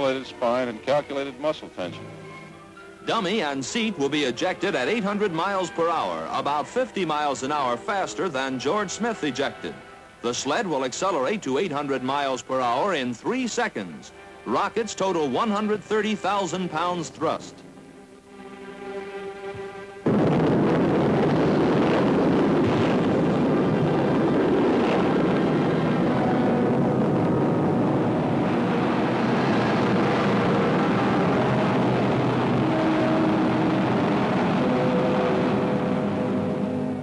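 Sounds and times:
faint music: 0.0 - 22.2
rocket motors roaring: 20.1 - 37.0.

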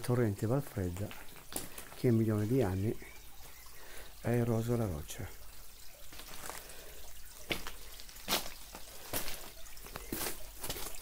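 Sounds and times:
water dripping into a pool: 0.0 - 11.0.

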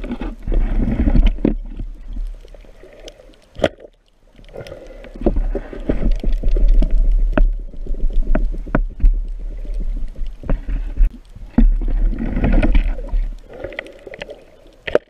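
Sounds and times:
bubbling: 0.0 - 15.0
underwater rumble of moving water: 0.0 - 15.0.

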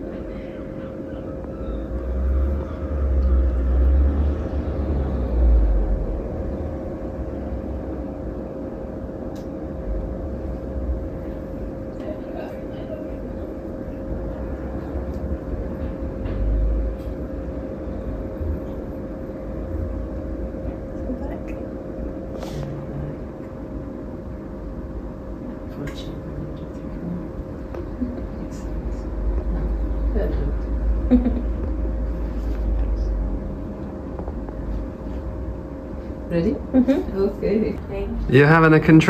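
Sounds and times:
room hum with mid-pitched tone: 0.0 - 39.0.

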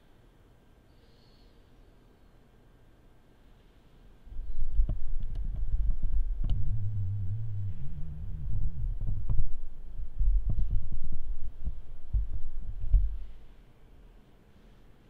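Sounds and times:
microphone handling rumble: 4.3 - 13.4.

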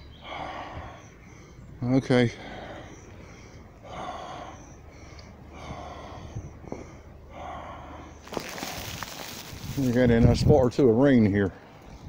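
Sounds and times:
man breathing heavily: 0.1 - 9.8
loud rustling: 8.2 - 10.1.

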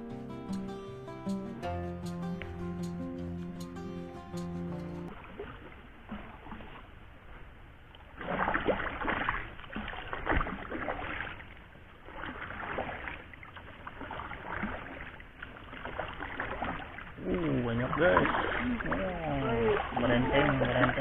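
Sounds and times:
paddle splashing in water: 5.0 - 21.0
person speaking: 17.2 - 21.0.

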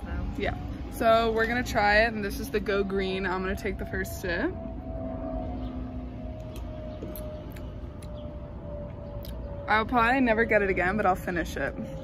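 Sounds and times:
lower hum: 0.0 - 12.0.

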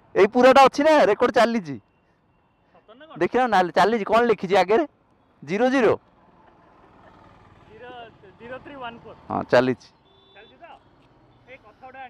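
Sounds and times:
faint roadside traffic: 0.0 - 12.0.

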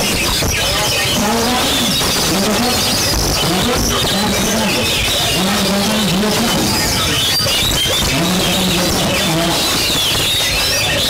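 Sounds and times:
crowd shouting: 0.0 - 11.0
songbirds chirping and whistling: 0.0 - 11.0.

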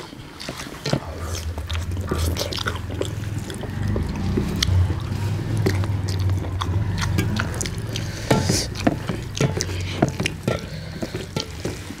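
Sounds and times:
wet squishing of food: 0.0 - 12.0
clicks against metal plates: 5.8 - 12.0.

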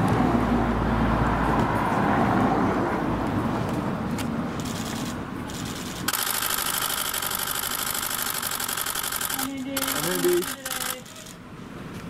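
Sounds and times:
mechanical buzzing: 4.7 - 11.3.

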